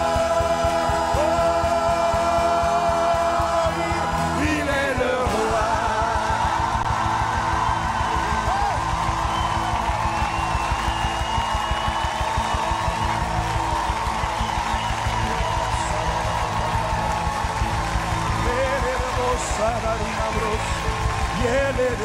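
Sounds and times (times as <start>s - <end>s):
choir and congregation singing: 0.0s - 7.9s
band playing steady beat: 0.0s - 22.0s.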